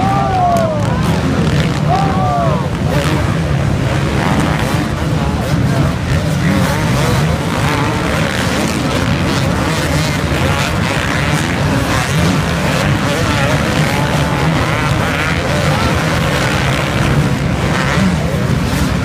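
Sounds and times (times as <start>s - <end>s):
motocross bikes revving: 0.0s - 19.0s.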